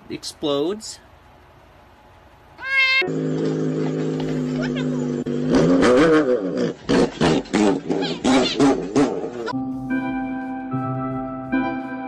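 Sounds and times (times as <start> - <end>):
animal yowling: 2.6 - 5.3, 7.9 - 9.6.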